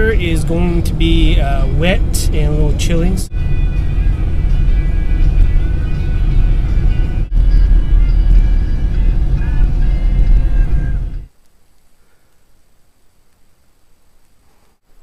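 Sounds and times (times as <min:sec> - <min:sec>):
music playing: 0:00.0 - 0:11.3
car cabin road noise: 0:00.0 - 0:11.4.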